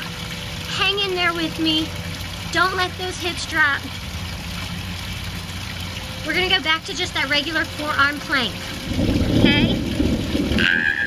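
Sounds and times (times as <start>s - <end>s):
fountain water pouring: 0.0s - 11.0s
low rumble: 5.9s - 11.0s.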